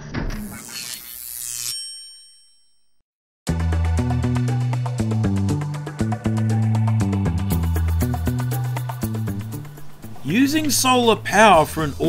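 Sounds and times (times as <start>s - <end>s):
background music with deep bass: 3.5s - 12.0s.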